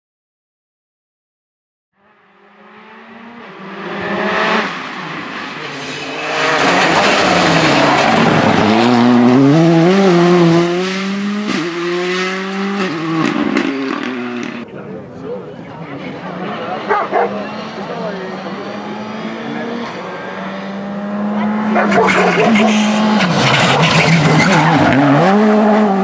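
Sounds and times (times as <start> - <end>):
rally car engines at full throttle: 2.0 - 26.0.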